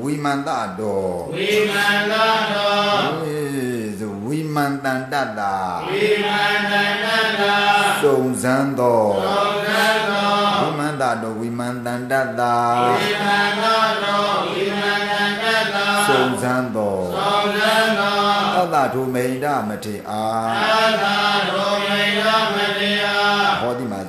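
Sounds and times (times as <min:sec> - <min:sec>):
man chanting melodically: 0:00.0 - 0:24.0.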